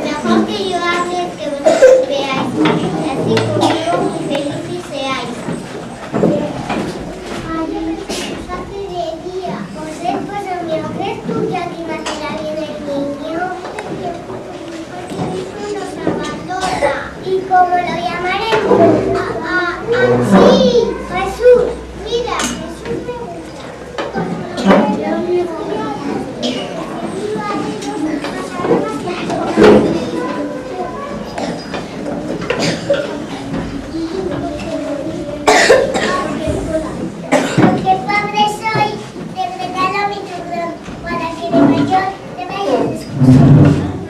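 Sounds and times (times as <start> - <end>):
children speaking: 0.0 - 44.0.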